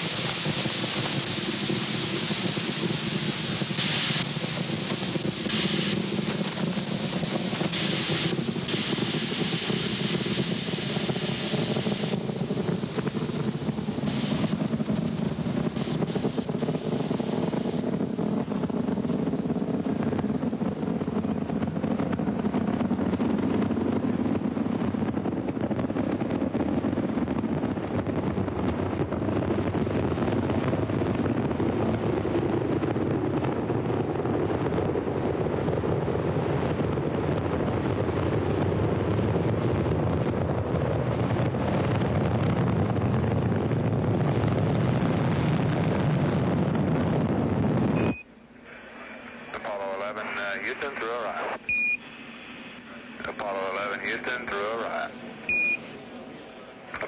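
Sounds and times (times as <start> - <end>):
loud rushing noise: 0.0 - 21.2
short high beep: 48.0 - 48.3, 51.7 - 52.0, 55.5 - 55.9.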